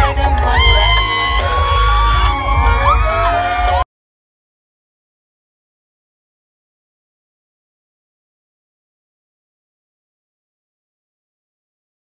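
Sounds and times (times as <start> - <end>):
loud live music with heavy bass: 0.0 - 3.8
person singing long gliding notes: 0.0 - 3.8.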